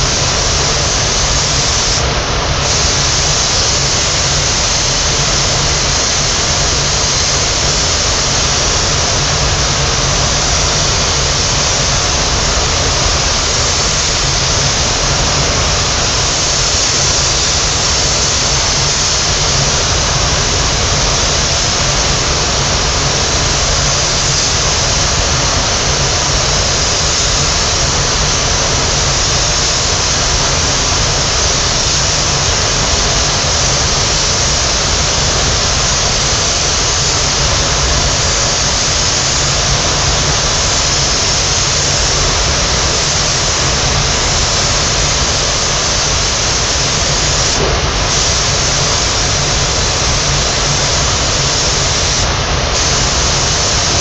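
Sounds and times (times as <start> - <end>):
low airflow rumble: 0.0 - 54.0
spray gun hissing: 0.0 - 54.0.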